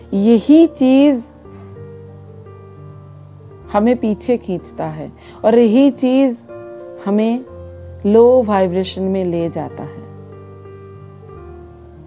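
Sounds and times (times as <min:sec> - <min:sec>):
soft music of held notes: 0:00.0 - 0:12.0.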